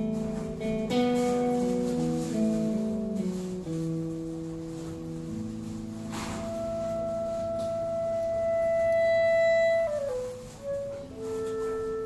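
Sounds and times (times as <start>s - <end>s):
electric guitar chords: 0.0s - 11.4s
clarinet long high note: 5.7s - 12.0s.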